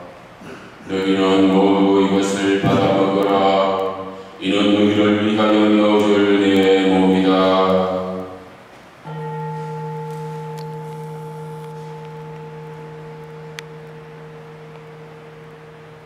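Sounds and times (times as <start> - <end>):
altar bell ringing: 9.0 - 16.0.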